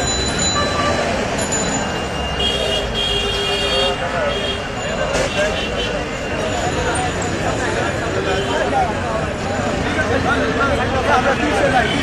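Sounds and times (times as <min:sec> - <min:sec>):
crowd hubbub: 0:00.0 - 0:12.0
road traffic: 0:00.0 - 0:12.0.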